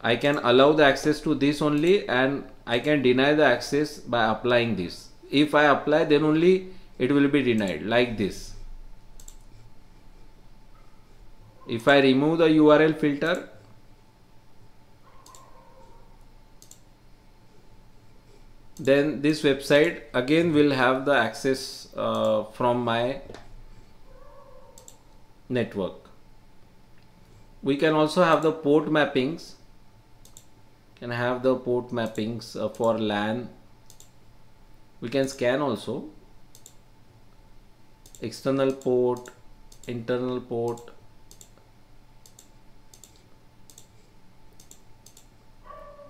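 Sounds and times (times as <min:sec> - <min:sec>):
faint background hum: 0:00.0 - 0:46.0
faint room hiss: 0:00.0 - 0:46.0
computer mouse click: 0:09.2 - 0:09.6, 0:15.2 - 0:15.5, 0:16.6 - 0:16.8, 0:24.7 - 0:25.1, 0:30.2 - 0:30.5, 0:33.8 - 0:34.2, 0:36.5 - 0:36.8, 0:38.0 - 0:40.0, 0:40.7 - 0:41.6, 0:42.2 - 0:44.0, 0:44.6 - 0:45.3.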